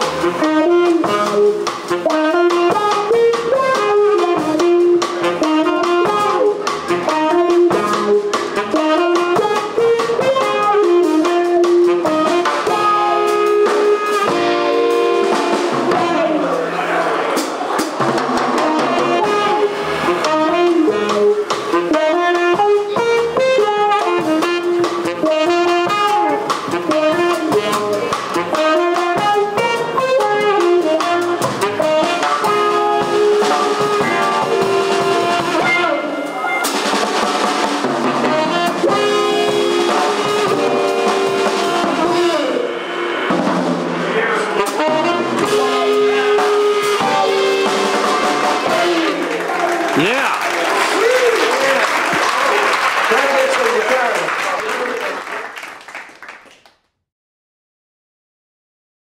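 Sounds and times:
electric guitar: 0.0s - 16.6s, 18.1s - 37.0s, 37.7s - 50.1s
saxophone melody: 0.0s - 17.1s, 18.6s - 37.0s, 37.8s - 49.7s
upright bass: 0.0s - 17.8s, 18.4s - 36.0s, 38.0s - 42.7s, 44.0s - 49.4s
drum kit with cymbals: 0.0s - 49.3s.

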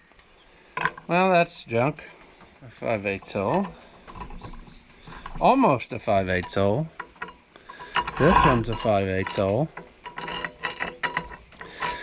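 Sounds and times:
drill bit clinking on metal: 6.2s - 12.0s.

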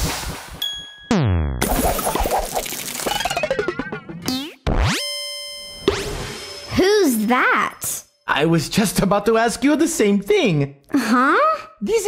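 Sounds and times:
cartoon springy boings and clunks: 0.6s - 6.7s.

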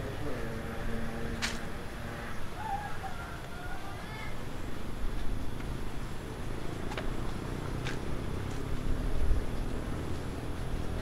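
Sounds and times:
wind rumble on microphone: 4.4s - 11.0s.

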